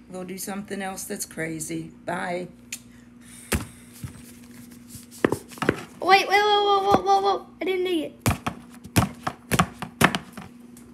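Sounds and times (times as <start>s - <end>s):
faint steady hum: 0.0s - 10.9s.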